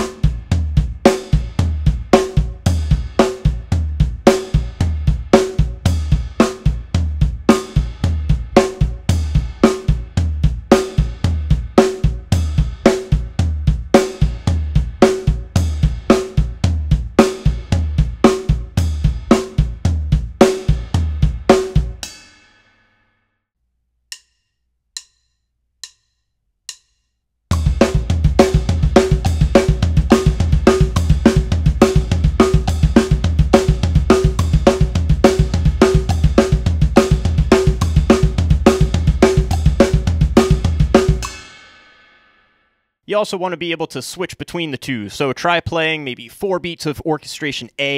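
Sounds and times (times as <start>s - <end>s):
acoustic drum kit playing: 0.0s - 22.2s, 27.5s - 41.7s.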